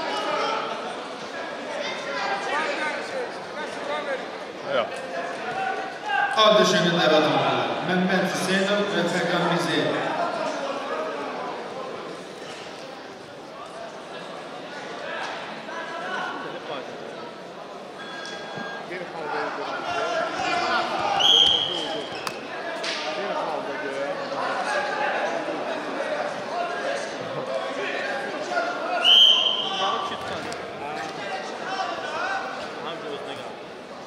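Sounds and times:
crowd shouting and chatter: 0.0 - 34.0
referee's whistle blasts: 21.2 - 22.0, 29.0 - 30.1.

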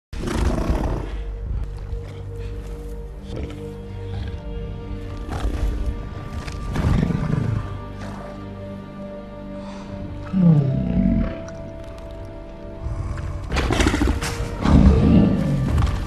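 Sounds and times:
sustained low music: 0.2 - 16.0
creature's deep roars: 12.8 - 16.0.

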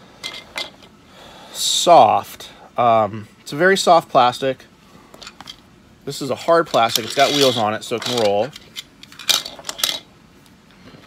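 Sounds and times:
plastic toy pieces clacking: 6.8 - 10.0.

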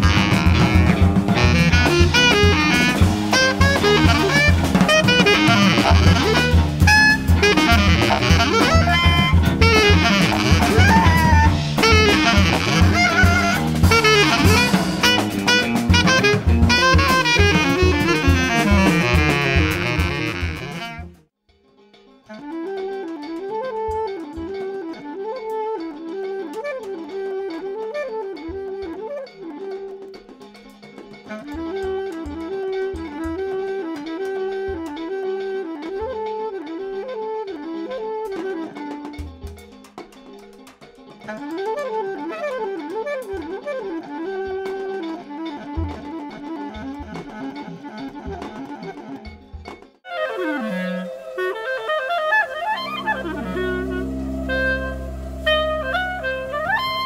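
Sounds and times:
jazz trio playing: 0.0 - 21.3, 22.3 - 40.6, 41.2 - 57.0.

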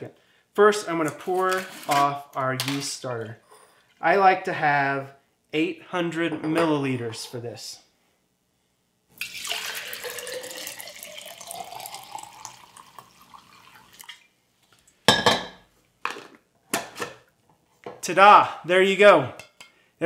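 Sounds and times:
liquid splashing into glass jar: 9.2 - 14.3
glassware knocking on counter: 15.1 - 15.6.

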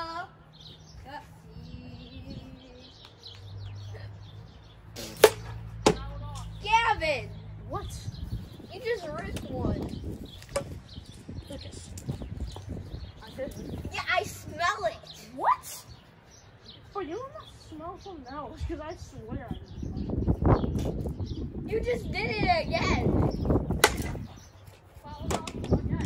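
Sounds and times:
wiffle ball impact crack: 5.0 - 6.1, 23.7 - 24.2.

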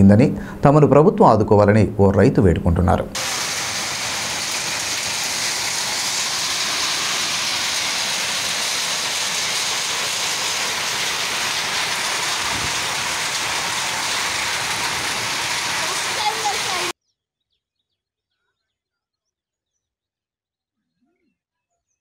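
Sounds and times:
heavy rain and hail pelting ground: 3.2 - 16.9.

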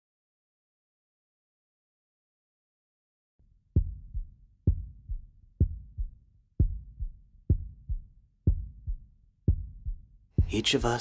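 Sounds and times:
heartbeat thumps: 3.8 - 11.0.

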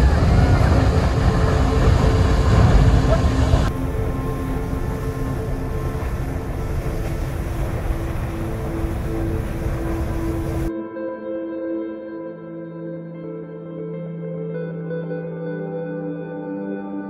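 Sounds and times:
geyser water and steam rushing: 0.0 - 10.7
ambient music with held tones: 0.0 - 17.0.

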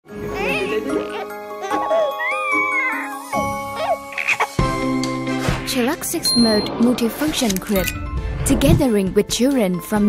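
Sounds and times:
light chiming background music: 0.1 - 5.3, 6.2 - 6.8, 7.7 - 10.0
baby laughing and cooing: 0.3 - 4.8.

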